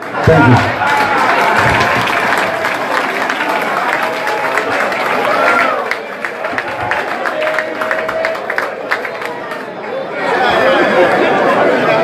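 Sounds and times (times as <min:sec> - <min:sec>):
audience applauding: 0:00.0 - 0:11.1.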